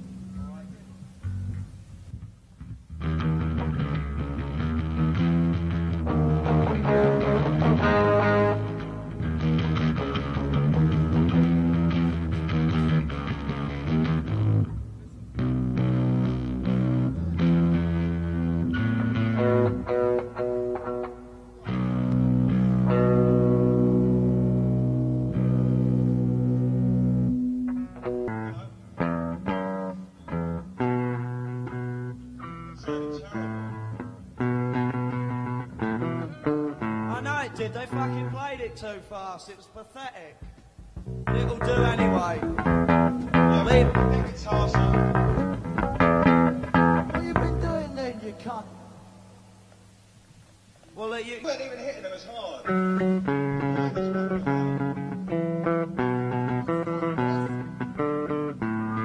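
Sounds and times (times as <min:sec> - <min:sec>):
bass guitar: 0:00.0 - 0:38.4, 0:40.4 - 0:48.8, 0:52.7 - 0:59.0
distorted electric guitar: 0:00.0 - 0:38.4, 0:40.4 - 0:50.9, 0:52.6 - 0:59.0.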